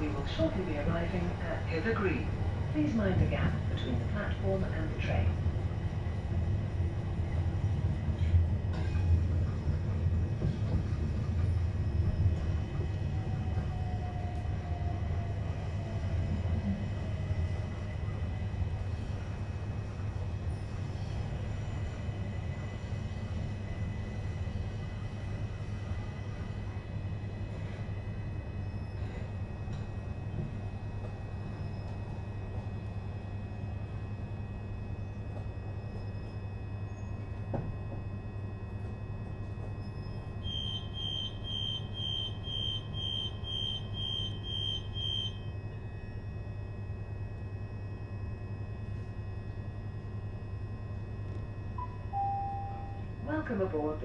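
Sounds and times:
on-board announcement: 0.0s - 5.4s, 51.8s - 54.0s
train equipment humming: 0.0s - 54.0s
door warning beeps: 39.8s - 45.5s, 51.8s - 53.1s.

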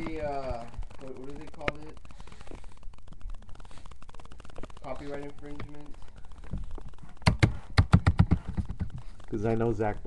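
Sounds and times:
sharp taps close to microphone: 7.2s - 9.0s.

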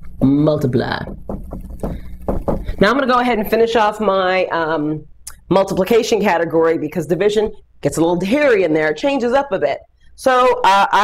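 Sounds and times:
marker scratching on whiteboard: 1.0s - 3.0s.

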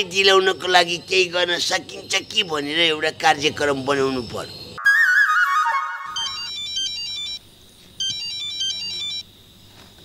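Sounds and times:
wavering falling tone: 4.8s - 7.1s
mobile phone ringtone: 5.9s - 7.4s, 8.0s - 9.2s.

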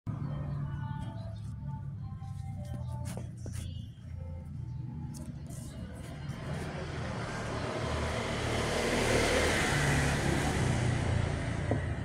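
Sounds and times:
motor vehicle passing by: 4.1s - 12.0s.

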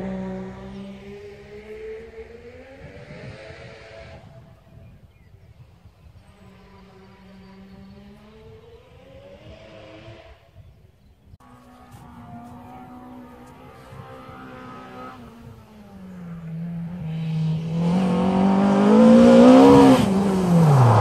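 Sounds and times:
rally car engine revving: 0.0s - 4.7s, 6.1s - 10.6s, 11.4s - 21.0s
rally car approaching: 0.0s - 21.0s.

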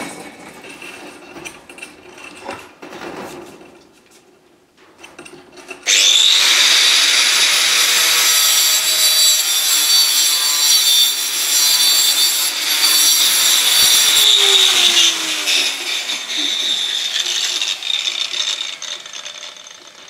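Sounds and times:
angle grinder cutting metal: 5.8s - 20.0s.

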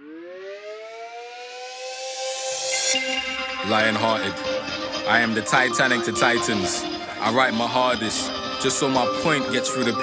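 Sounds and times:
siren winding up: 0.0s - 3.6s
reggae music: 2.4s - 10.0s.

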